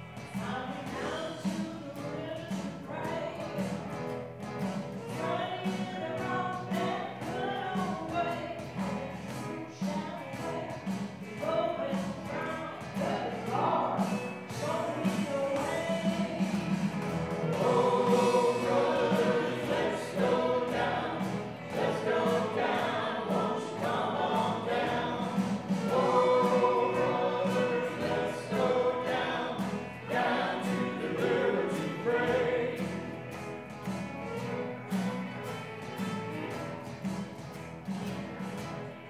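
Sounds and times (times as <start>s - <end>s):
keyboard accompaniment: 0.0s - 39.0s
strummed guitars: 0.0s - 39.0s
violin melody: 25.8s - 39.0s.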